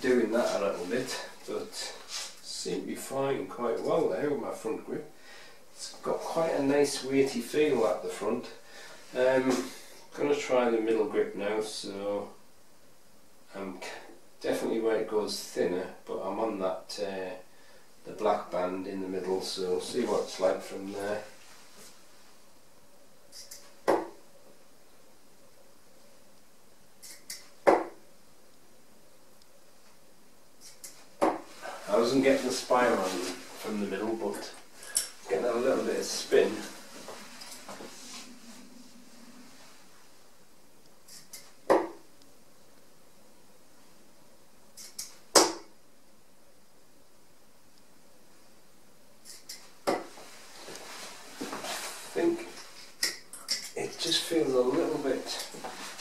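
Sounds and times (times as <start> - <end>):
darts hitting dartboard: 23.9 - 24.2, 27.6 - 28.0, 41.7 - 42.0, 45.3 - 45.7.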